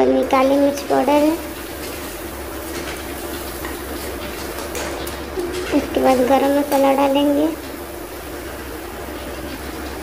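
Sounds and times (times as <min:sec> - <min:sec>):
masala sizzling in oil: 0:00.2 - 0:10.0.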